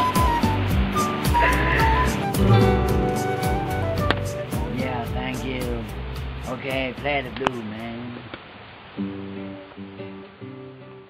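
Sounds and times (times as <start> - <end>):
classical guitar strumming: 0.0 - 7.6, 9.0 - 11.0.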